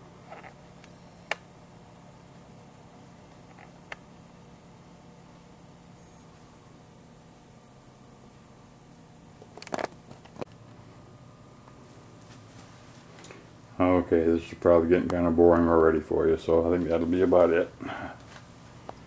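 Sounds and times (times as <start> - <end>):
low steady hum: 0.0 - 19.0.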